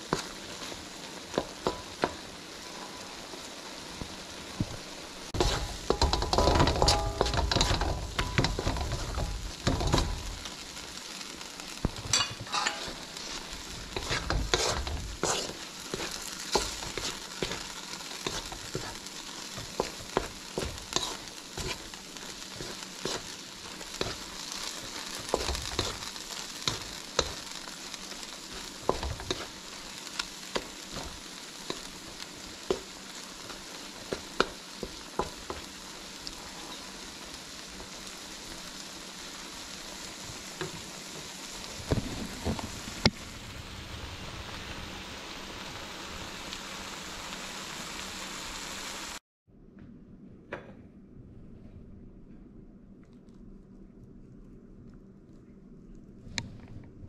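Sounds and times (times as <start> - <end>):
spatula stirring and scraping: 0.0 - 3.1, 4.7 - 10.7, 12.0 - 42.7
faint crackles: 0.0 - 47.4
food sizzling in a wok: 0.0 - 49.2
spatula knocking against wok: 5.4 - 10.0.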